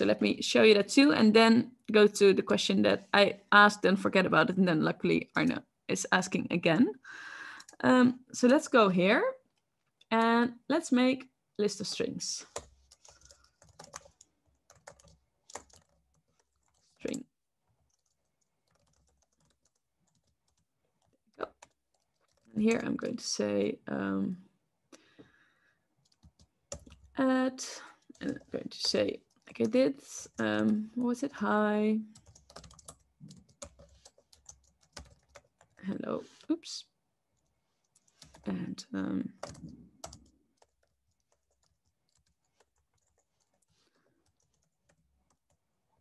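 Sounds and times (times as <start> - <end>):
keyboard typing: 12.5 - 22.8, 26.0 - 27.2, 32.1 - 35.8, 37.9 - 38.5, 39.4 - 45.6.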